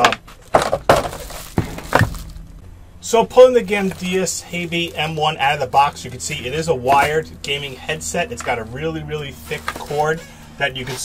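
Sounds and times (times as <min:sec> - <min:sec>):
cardboard and plastic rustling: 0:00.0 - 0:02.8, 0:03.6 - 0:05.4, 0:09.4 - 0:10.1
sharp packaging crackles: 0:00.5 - 0:02.7.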